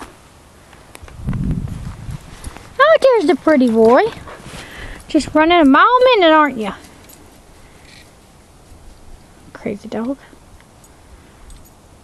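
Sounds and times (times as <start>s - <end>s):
low rumble: 1.2s - 2.8s.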